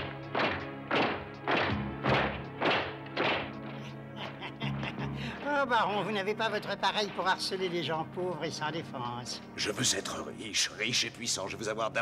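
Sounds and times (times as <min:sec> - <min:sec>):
boots stamping in slow march: 0:00.0 - 0:04.0
dark music score: 0:00.0 - 0:12.0.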